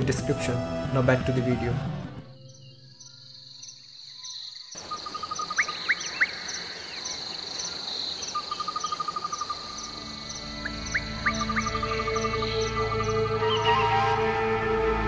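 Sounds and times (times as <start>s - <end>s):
background music: 0.0s - 3.0s, 9.3s - 15.0s
insects trilling: 2.3s - 13.7s.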